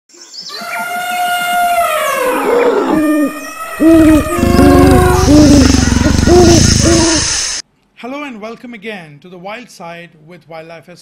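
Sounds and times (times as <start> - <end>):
held swelling tones: 2.4 - 7.6.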